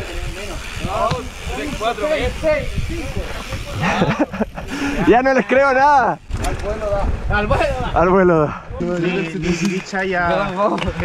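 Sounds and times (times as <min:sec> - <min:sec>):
bike rolling on dirt trail: 0:00.0 - 0:11.0
voices talking: 0:00.0 - 0:11.0
wind rush on microphone: 0:00.0 - 0:11.0.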